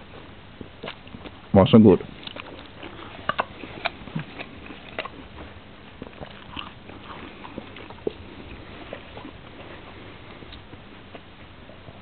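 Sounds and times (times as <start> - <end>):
dog crunching apple: 0.0 - 12.0.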